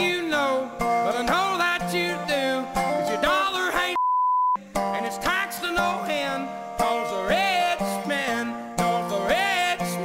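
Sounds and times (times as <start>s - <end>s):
man singing country song: 0.0s - 4.0s, 4.8s - 10.0s
resonator guitar: 0.0s - 4.0s, 4.6s - 10.0s
censor beep: 4.0s - 4.6s.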